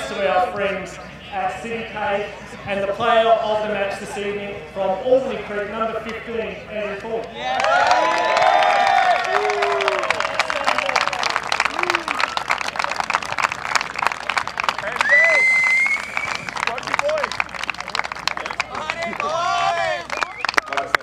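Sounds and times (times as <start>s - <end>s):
people clapping: 7.3s - 21.0s
rising whistle: 15.0s - 16.6s.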